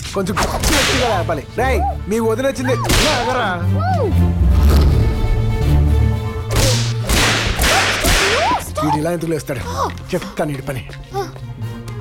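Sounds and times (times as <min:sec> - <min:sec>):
sharp whip-like whooshes: 0:06.5 - 0:08.6.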